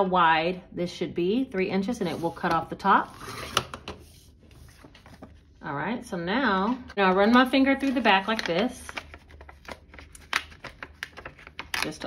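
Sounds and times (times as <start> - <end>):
envelope crackling: 7.1 - 12.0.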